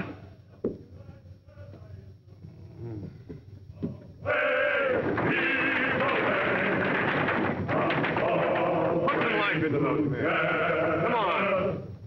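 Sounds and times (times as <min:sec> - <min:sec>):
men's chorus singing a work chant: 0:03.8 - 0:11.8.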